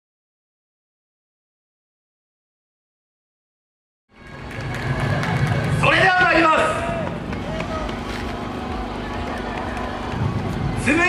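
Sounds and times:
generator humming: 4.1s - 11.0s
street crowd noise: 4.1s - 11.0s.

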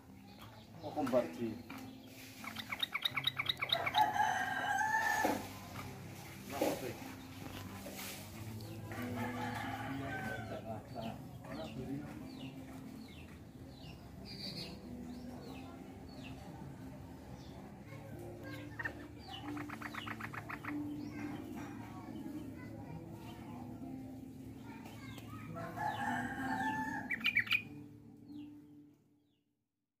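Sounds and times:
bulbuls chirping: 0.0s - 5.4s, 18.4s - 21.5s, 25.6s - 27.7s
rooster crowing: 3.8s - 5.4s, 25.6s - 27.1s.

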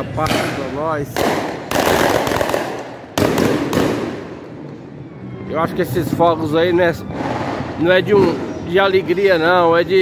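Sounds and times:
fireworks bursting with loud bangs: 0.1s - 4.7s.

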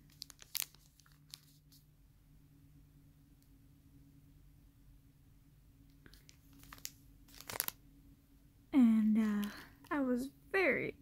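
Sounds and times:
plastic packaging crinkling: 0.0s - 1.8s, 6.0s - 7.8s, 9.1s - 9.9s.

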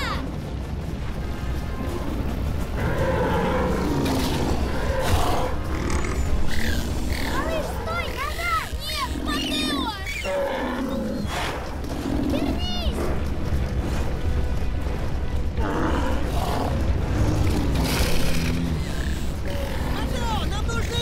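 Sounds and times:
background music: 0.0s - 21.0s
roar-like calls: 1.8s - 13.2s, 15.6s - 21.0s
dinosaur squealing cries: 4.8s - 11.3s.

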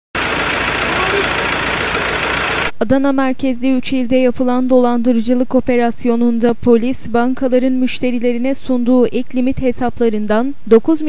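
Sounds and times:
vehicle engine idling: 0.1s - 2.8s.

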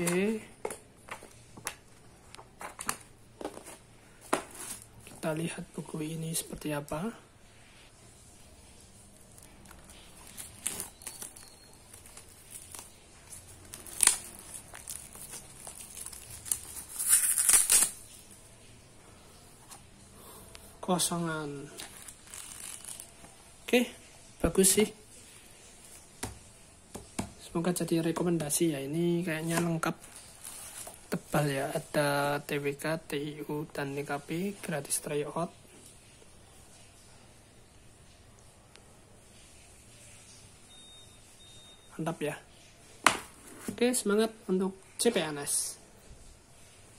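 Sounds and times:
plastic wrap crinkling: 9.0s - 18.4s, 21.4s - 23.8s, 29.2s - 32.0s
plastic wrap ripping: 9.2s - 18.3s, 21.6s - 23.4s
faint high-pitched steady beep: 10.9s - 12.1s, 40.6s - 42.3s.

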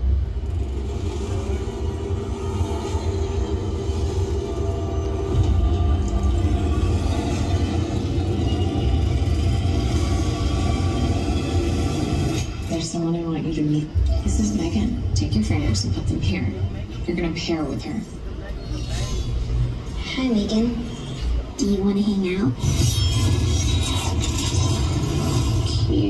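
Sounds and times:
faint music from speakers: 0.0s - 26.0s
tram rumbling: 0.0s - 26.0s.

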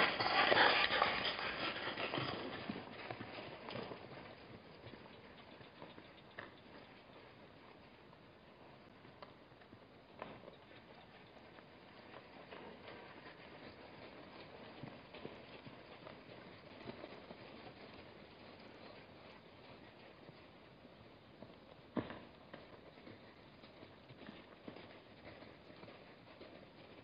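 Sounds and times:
herd hoofbeats: 0.0s - 27.0s.

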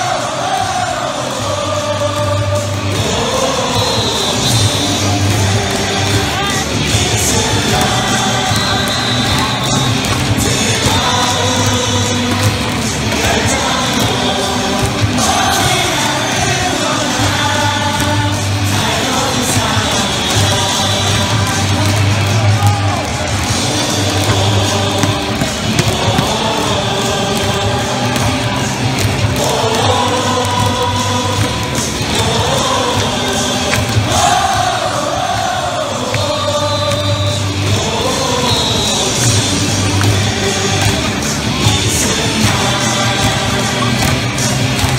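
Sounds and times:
crowd singing in unison: 0.0s - 44.9s
loud music over speakers: 0.0s - 44.9s.

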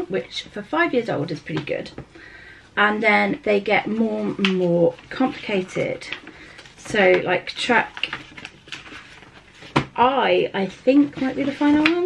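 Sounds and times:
paper pages rustling: 3.8s - 12.0s.

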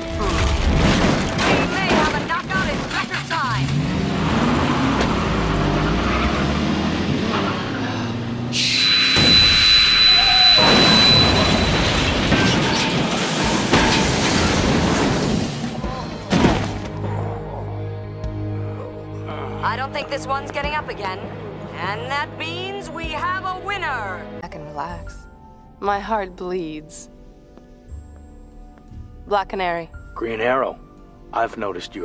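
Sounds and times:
wooden crates smashing: 0.0s - 3.7s, 10.6s - 16.9s
dramatic music: 0.0s - 32.0s
shrill high-pitched blast: 8.5s - 12.2s.

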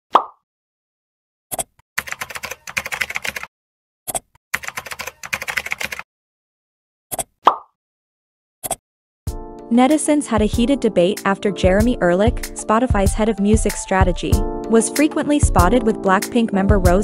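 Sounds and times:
pop sound effect: 0.1s - 0.4s, 7.1s - 7.8s
keyboard typing: 1.5s - 3.5s, 4.1s - 6.0s.

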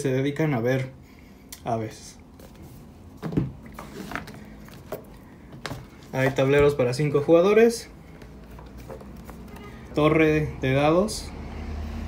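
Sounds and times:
low steady room hum: 0.0s - 11.8s.

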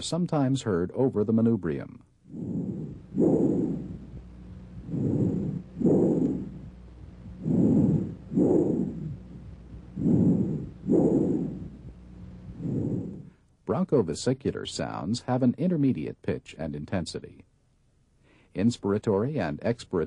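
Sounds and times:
bronchial breath sounds: 2.2s - 13.5s, 18.2s - 18.6s.

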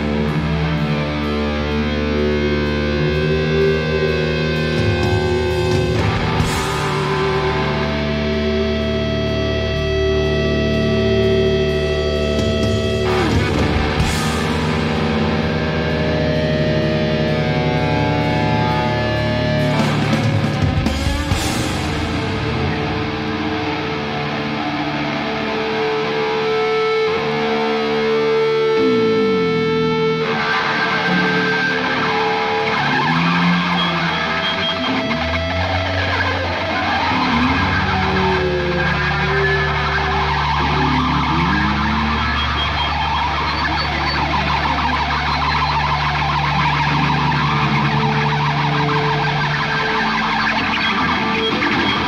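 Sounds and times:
electric guitars sliding notes: 0.0s - 52.0s
live rock band: 0.0s - 52.0s.

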